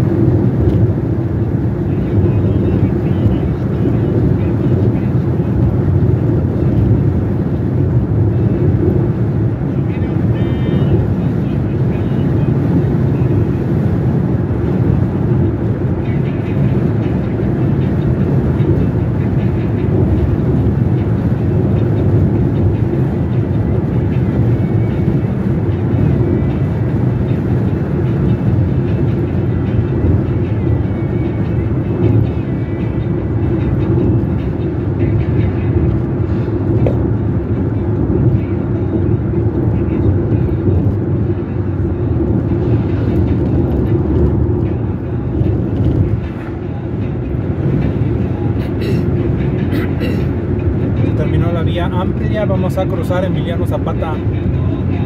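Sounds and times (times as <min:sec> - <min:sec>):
car engine and road rumble: 0:00.0 - 0:55.0.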